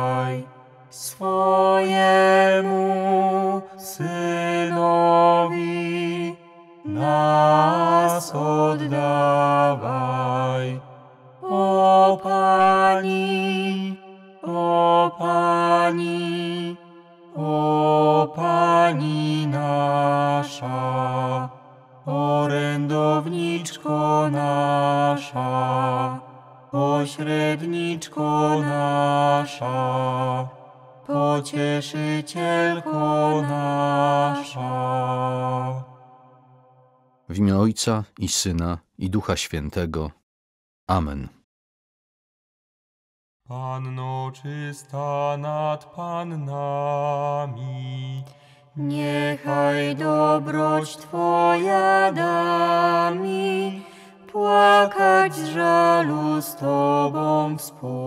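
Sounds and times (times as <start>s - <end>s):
slow devotional chant: 0.0s - 37.6s, 43.5s - 58.0s.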